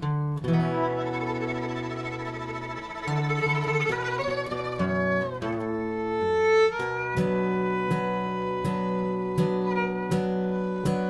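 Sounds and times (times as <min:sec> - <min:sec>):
acoustic guitar chord ringing: 0:00.0 - 0:11.0
fiddle bowed line: 0:00.0 - 0:11.0.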